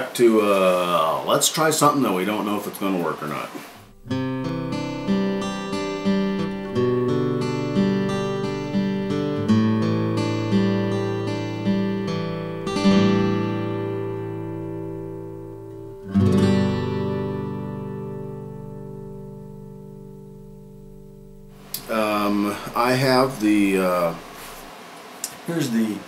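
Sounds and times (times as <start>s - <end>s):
acoustic guitar music: 2.0s - 24.7s.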